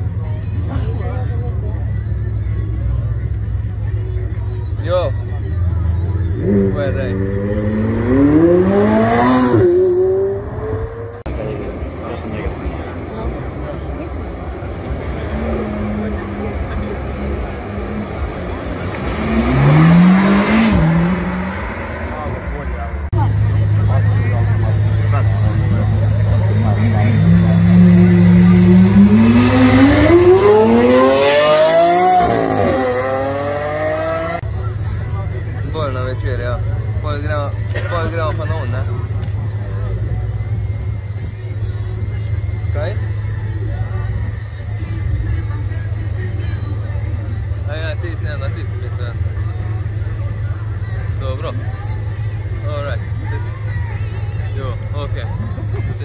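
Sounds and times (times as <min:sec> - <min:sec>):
crowd voices: 0:00.0 - 0:56.0
supercar engines accelerating: 0:04.7 - 0:56.0.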